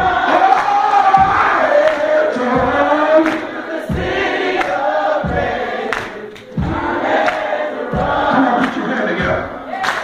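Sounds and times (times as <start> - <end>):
low beat: 0.0 - 9.6
gospel choir singing: 0.0 - 10.0.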